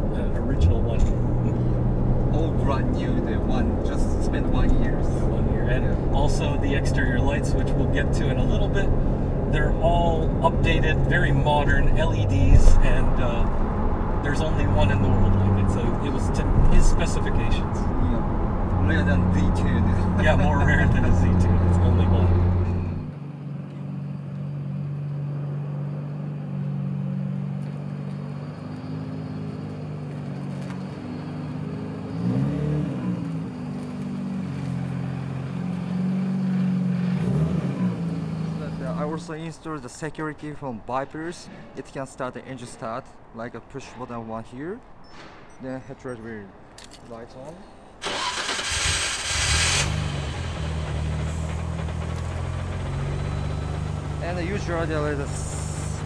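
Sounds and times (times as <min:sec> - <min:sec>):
engine revving: 0:00.0 - 0:23.1, 0:31.2 - 0:39.1, 0:48.0 - 0:56.0
car engine idling: 0:48.0 - 0:56.0.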